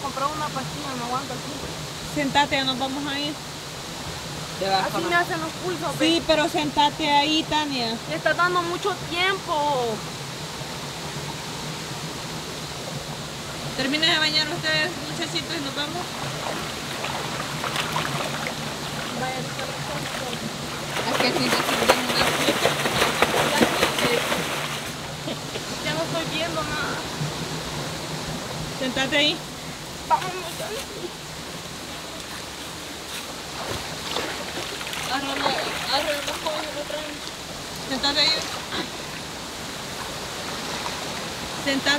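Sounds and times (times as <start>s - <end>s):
rocky stream running: 0.0s - 41.9s
voices talking: 18.7s - 24.4s, 28.8s - 31.2s, 35.1s - 39.1s
hands splashing in water: 20.0s - 25.0s.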